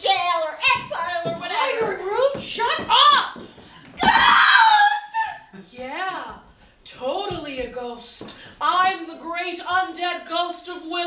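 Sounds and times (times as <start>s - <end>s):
woman screaming: 4.0s - 5.5s.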